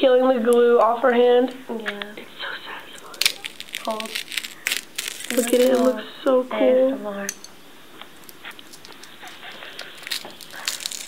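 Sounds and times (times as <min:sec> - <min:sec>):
dried glue peeling off skin: 0:03.0 - 0:05.9, 0:08.2 - 0:11.0.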